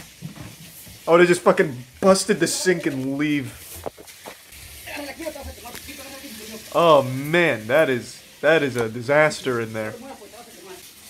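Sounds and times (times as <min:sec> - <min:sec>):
pressurised water spraying: 0:00.0 - 0:11.0.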